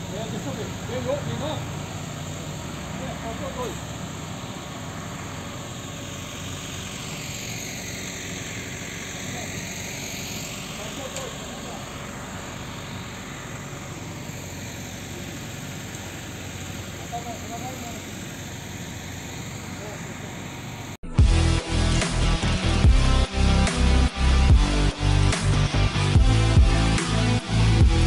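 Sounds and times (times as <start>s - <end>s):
low hum: 0.0s - 28.0s
faint voices: 8.7s - 20.9s.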